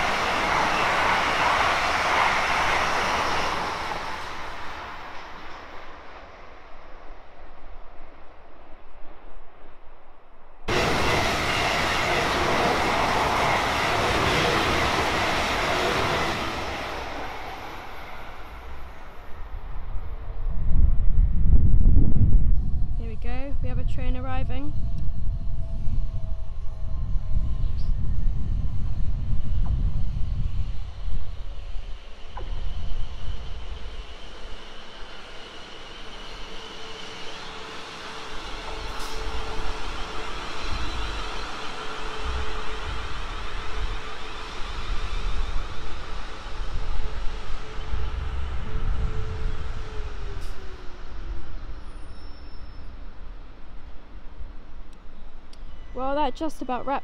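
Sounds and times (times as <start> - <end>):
train wheels rumbling on rails: 0.0 - 7.9, 10.6 - 57.0
train motor whine: 24.7 - 56.4.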